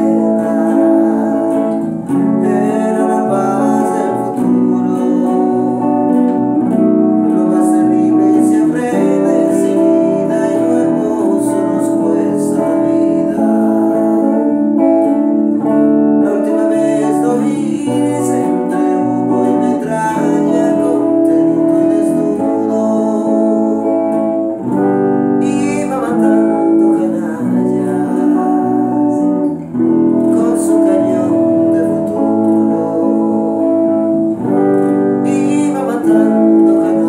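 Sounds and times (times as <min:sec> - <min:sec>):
acoustic guitar: 0:00.0 - 0:37.0
electric guitar: 0:00.0 - 0:37.0.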